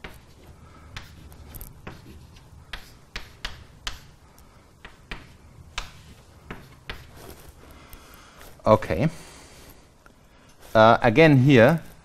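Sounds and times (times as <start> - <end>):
chalk tapping on blackboard: 0.0 - 0.4, 1.0 - 4.2, 4.8 - 7.4.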